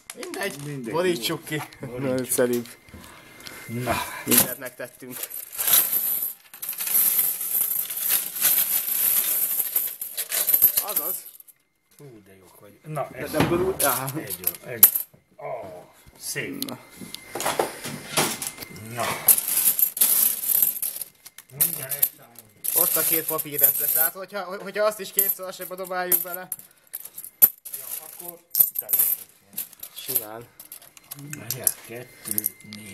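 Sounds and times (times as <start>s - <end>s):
coins clinking onto table: 4.3s - 11.5s, 13.8s - 15.1s, 19.2s - 24.1s, 25.1s - 32.6s.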